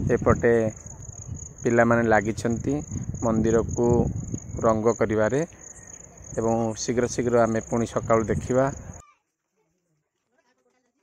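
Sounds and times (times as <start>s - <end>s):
crickets chirring: 0.0s - 9.0s
voices talking: 0.0s - 9.0s.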